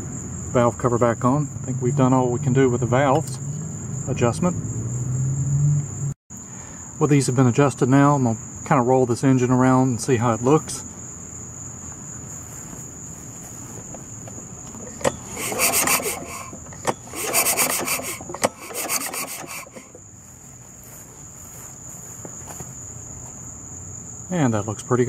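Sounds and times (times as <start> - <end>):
crickets chirping: 0.0 - 25.0
recoil starter rope rasping: 14.7 - 21.7.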